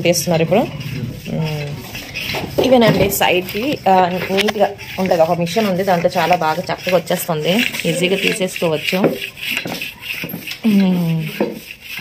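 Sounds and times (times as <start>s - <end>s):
hand plane rasping on wood: 0.0s - 12.0s.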